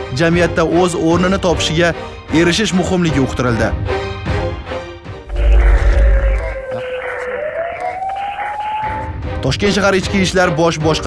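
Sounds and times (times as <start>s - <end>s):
synthetic tone gliding upward: 5.3s - 7.8s.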